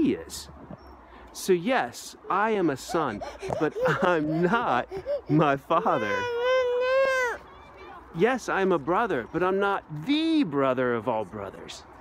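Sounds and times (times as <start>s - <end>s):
baby wailing: 2.7s - 7.5s.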